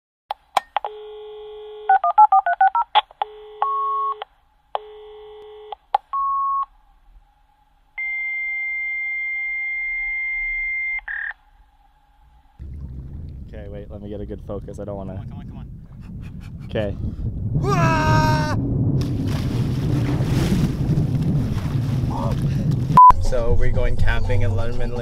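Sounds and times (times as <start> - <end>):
telephone dial tone: 0.7 - 6.6
keypad tones: 1.9 - 4.3.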